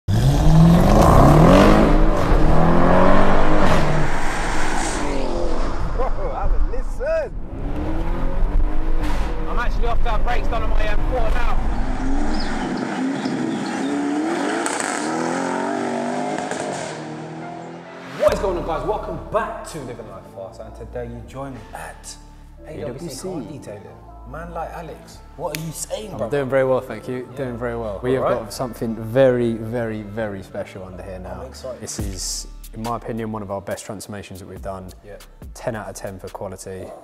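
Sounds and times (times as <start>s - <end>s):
car engine accelerating: 0.1s - 18.2s
man talking: 5.9s - 7.3s, 9.5s - 11.6s, 18.2s - 37.0s.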